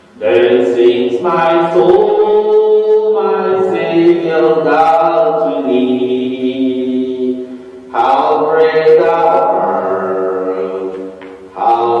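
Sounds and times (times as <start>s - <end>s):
voices singing a hymn: 0.2s - 12.0s.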